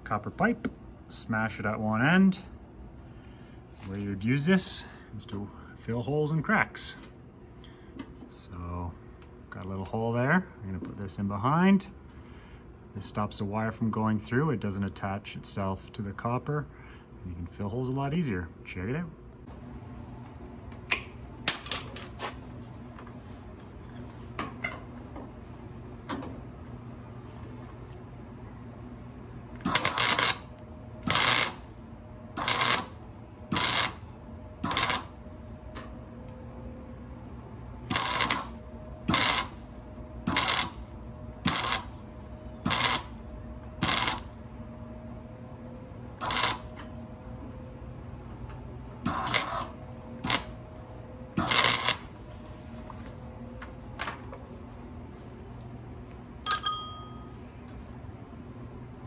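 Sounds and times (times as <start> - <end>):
wire welder crackling: 29.6 - 34.0, 34.6 - 35.2, 37.8 - 39.7, 40.3 - 43.2, 43.8 - 44.4, 46.2 - 46.8, 49.0 - 50.6, 51.4 - 52.2.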